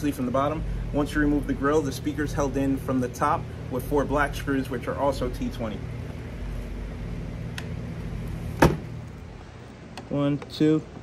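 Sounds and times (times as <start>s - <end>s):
steady low hum: 0.0s - 11.0s
sharp knock: 8.6s - 8.9s.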